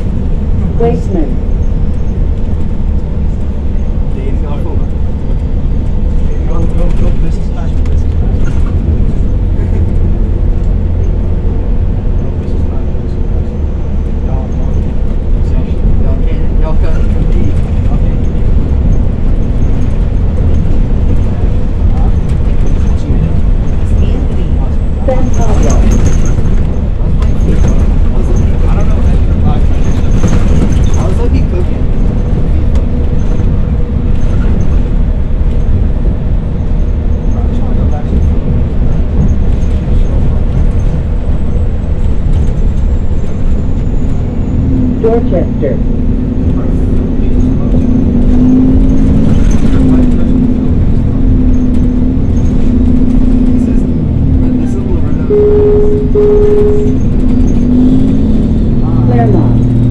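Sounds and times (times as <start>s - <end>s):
bus drivetrain and road rumble: 0.0s - 59.9s
thin steady whine: 55.2s - 57.7s.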